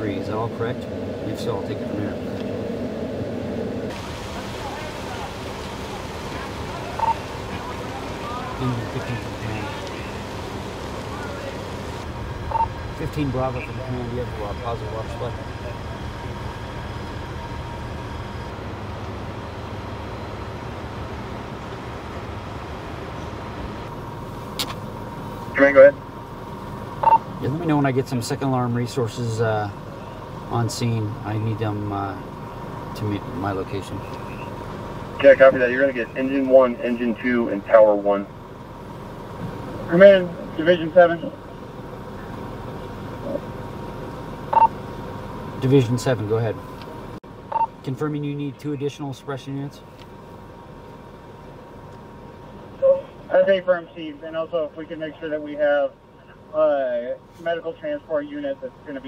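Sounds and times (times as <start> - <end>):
engine idling: 0.0 - 59.0
radio chirp: 6.4 - 10.3, 11.1 - 16.7, 27.0 - 27.4, 34.0 - 34.6, 44.5 - 44.8
voice over radio: 25.6 - 26.0, 35.2 - 38.3.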